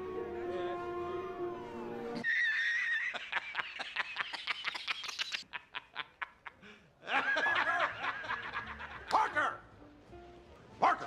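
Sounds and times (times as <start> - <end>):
man laughing hard: 2.3 - 9.1.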